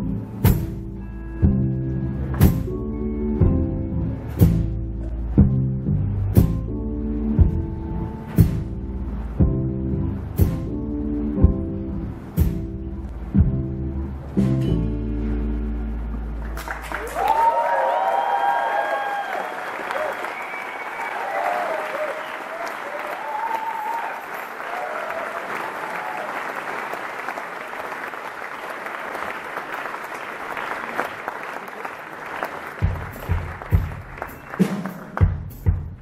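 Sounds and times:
audience applauding: 16.4s - 35.6s
cheers and whistles: 17.0s - 26.6s
kick drum beats: 32.8s - 34.3s, 35.2s - 36.0s.

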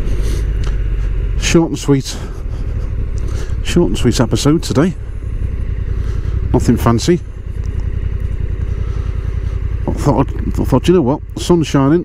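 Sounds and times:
motorcycle engine throbbing: 0.0s - 12.0s.

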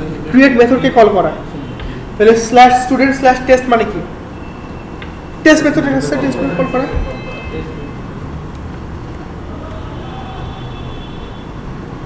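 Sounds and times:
low rumble and hiss: 0.0s - 12.0s.

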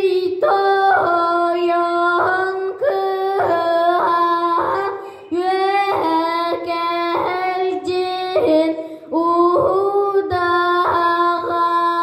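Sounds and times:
boy singing unaccompanied: 0.0s - 12.0s.

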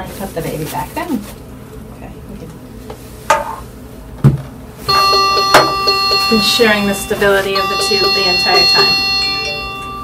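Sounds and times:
background music with sustained tones: 4.9s - 10.0s.

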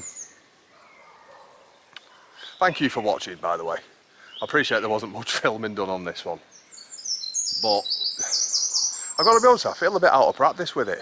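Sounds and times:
songbird chirping: 0.0s - 11.0s.

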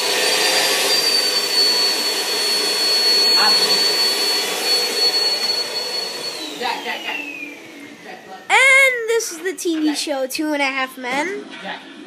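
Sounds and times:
vacuum cleaner running: 0.0s - 9.6s, 11.2s - 12.0s.

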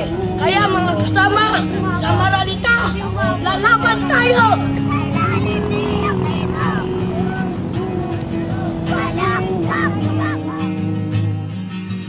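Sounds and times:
marchers' voices: 0.0s - 11.2s
traffic noise: 0.0s - 12.0s
long steady tone: 6.1s - 10.2s.

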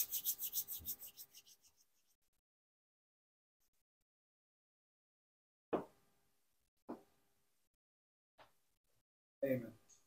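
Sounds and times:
quick rubbing strokes: 0.0s - 2.2s.

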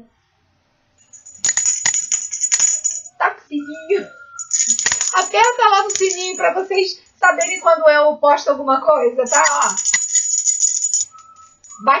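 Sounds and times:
hand bell jingling: 1.1s - 6.6s, 7.2s - 7.7s, 9.3s - 12.0s.

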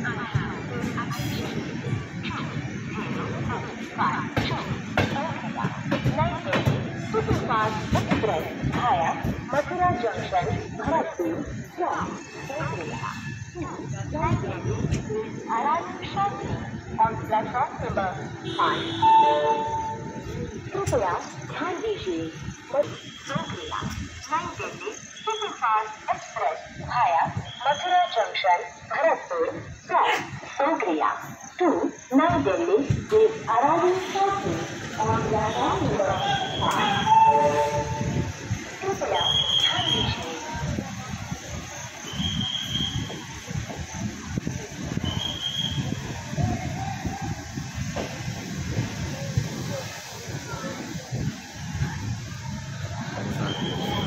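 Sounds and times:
people talking over one another: 0.0s - 54.0s
train wheels rumbling on rails: 0.0s - 54.0s.

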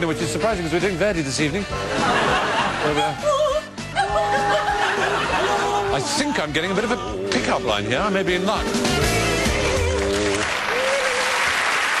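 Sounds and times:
music: 0.0s - 11.4s
studio audience applauding: 9.1s - 12.0s.

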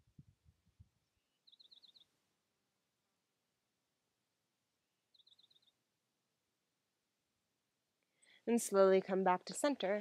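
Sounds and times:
faint high bird chirps: 1.0s - 2.2s, 5.1s - 5.8s.

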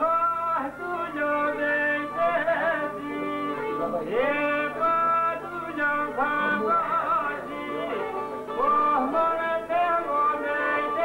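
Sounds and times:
man singing ornamented melody: 0.0s - 11.0s.

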